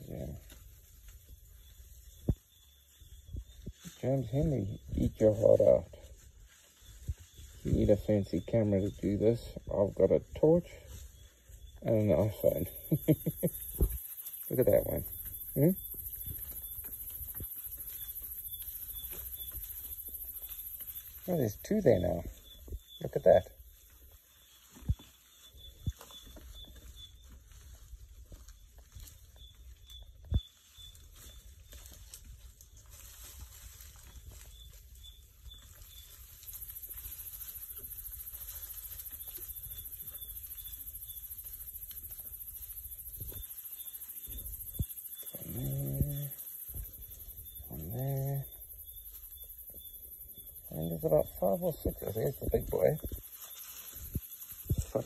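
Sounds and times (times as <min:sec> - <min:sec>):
faint chirping: 0:00.0 - 0:55.0
high insect shrill: 0:32.9 - 0:55.0
short low voiced sounds: 0:45.4 - 0:46.4.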